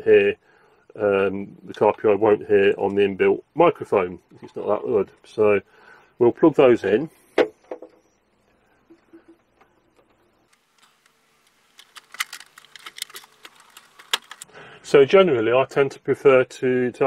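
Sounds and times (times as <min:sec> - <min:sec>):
jack plugs clicking and rattling: 0:08.9 - 0:14.5.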